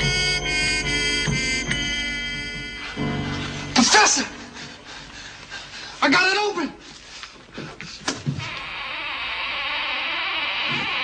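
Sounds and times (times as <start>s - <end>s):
held music chords: 0.0s - 5.8s.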